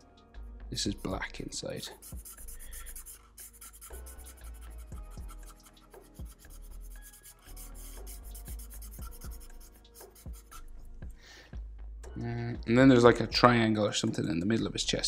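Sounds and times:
marker scratching on paper: 0:01.8 - 0:10.8
soft low thumps: 0:11.0 - 0:13.0.

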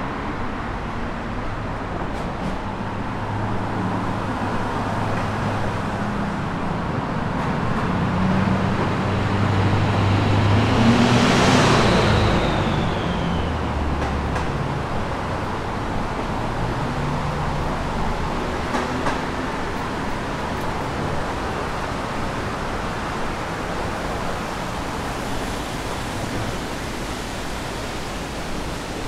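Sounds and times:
road traffic engine hums: 0:00.0 - 0:29.0
vehicle passing with falling whine: 0:08.0 - 0:14.3.

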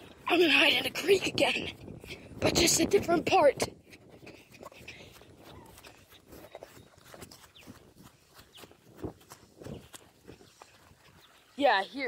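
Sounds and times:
footsteps hurrying on grass: 0:00.0 - 0:12.0.

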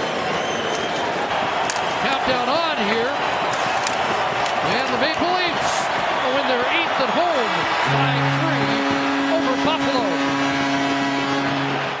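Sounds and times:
arena crowd cheering: 0:00.0 - 0:12.0
long steady horn tone: 0:07.8 - 0:12.0.

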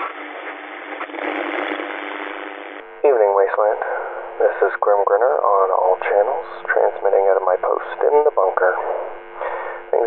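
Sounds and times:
radio static hissing: 0:00.0 - 0:10.0.

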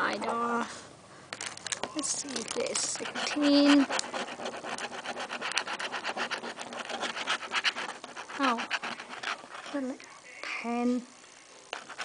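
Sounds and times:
coin scraping scratch-off ticket: 0:02.3 - 0:09.8.

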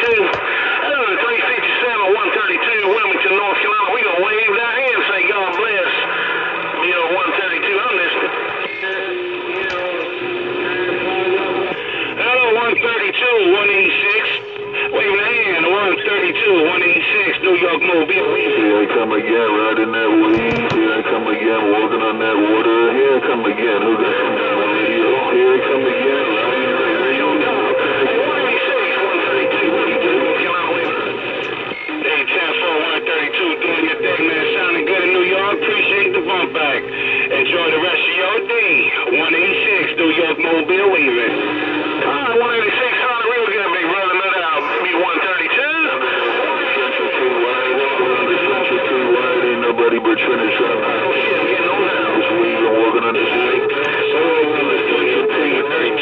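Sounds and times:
distorted warbling radio voices: 0:00.0 - 0:56.0
squealing tones: 0:24.2 - 0:38.2.

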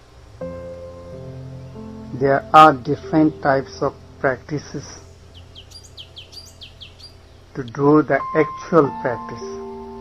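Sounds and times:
small bird chirping: 0:01.3 - 0:02.2, 0:04.0 - 0:08.0.

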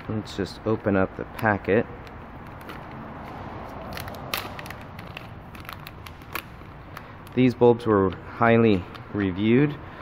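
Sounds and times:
packaging crinkling: 0:02.0 - 0:07.5.

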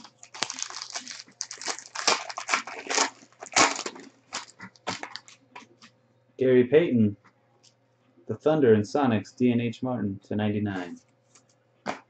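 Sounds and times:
foil card pack crinkling: 0:00.0 - 0:05.8.

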